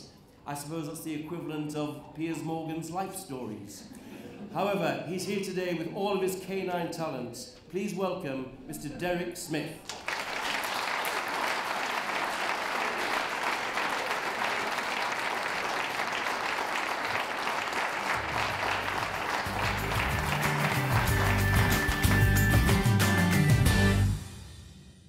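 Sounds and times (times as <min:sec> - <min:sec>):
audience clapping: 0:09.8 - 0:23.9
music with bass line: 0:18.5 - 0:24.3.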